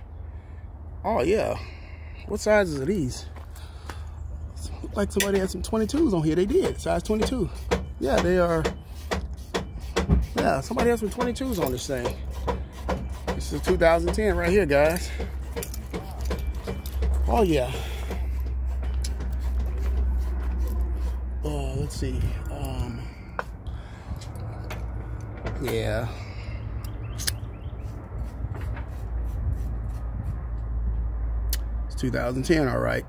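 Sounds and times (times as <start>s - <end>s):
steady low rumble: 13.5s - 33.0s
light clicks and knocks: 24.2s - 25.9s
sharp click: 26.8s - 27.4s.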